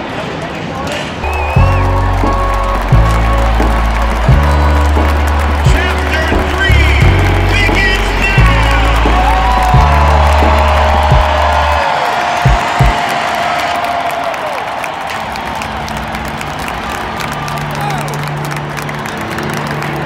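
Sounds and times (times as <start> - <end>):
crowd noise: 0.0 - 20.0
heavy low rumble: 1.2 - 11.8
woman singing over loudspeakers: 1.6 - 6.9.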